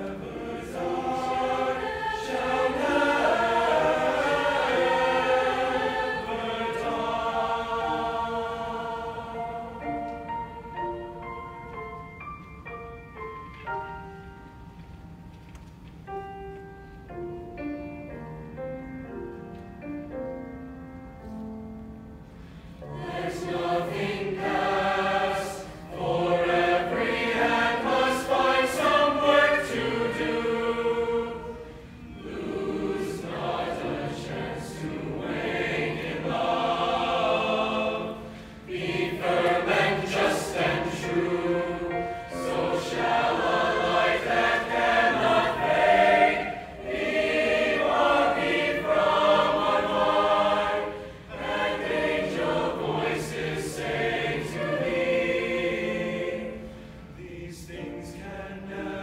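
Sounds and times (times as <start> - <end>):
mixed choir singing: 0.0 - 11.1, 22.8 - 59.0.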